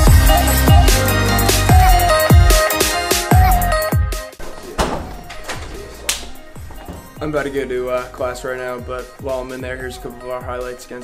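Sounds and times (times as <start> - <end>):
thunks: 4.4 - 7.5.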